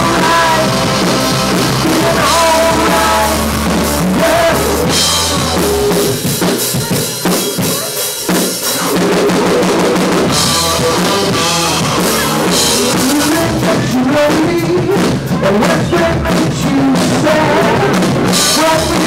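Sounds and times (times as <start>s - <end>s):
drum kit: 0.0s - 19.0s
live rock band playing: 0.0s - 19.0s.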